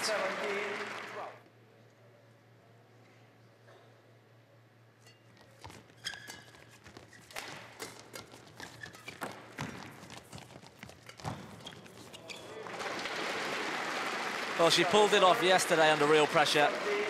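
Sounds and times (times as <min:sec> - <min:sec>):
crowd applauding: 0:00.0 - 0:01.4, 0:12.6 - 0:17.0
court shoes squeaking: 0:05.0 - 0:12.9.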